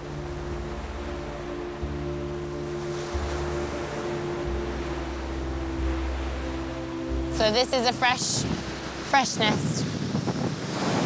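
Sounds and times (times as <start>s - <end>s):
soft music of held notes: 0.0s - 9.7s
ocean surf: 0.0s - 11.0s
wind: 0.0s - 11.0s.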